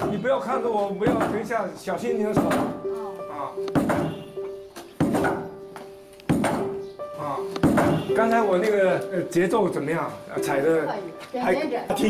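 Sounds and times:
trip hammer pounding pulp on stone: 0:01.0 - 0:01.5, 0:02.3 - 0:02.8, 0:05.0 - 0:05.5, 0:06.3 - 0:06.8, 0:07.6 - 0:08.1.

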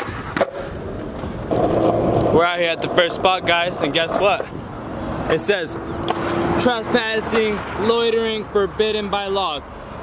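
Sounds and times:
skateboard wheels rolling on concrete: 0:00.0 - 0:10.0.

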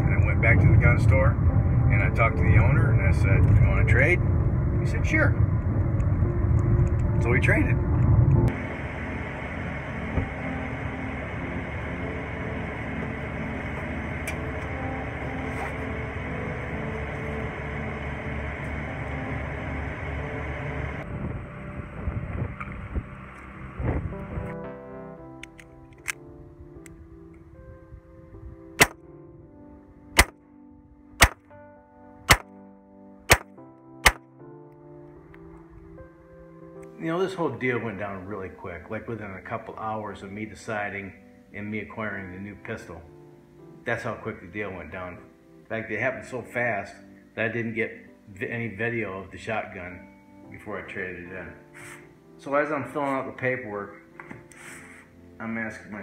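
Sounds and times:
car road rumble: 0:00.0 - 0:24.7
background music: 0:00.0 - 0:56.0
faint steady tones: 0:04.7 - 0:22.0
pistol shots: 0:30.2 - 0:30.4, 0:31.2 - 0:31.4, 0:32.3 - 0:32.5, 0:33.3 - 0:34.2.

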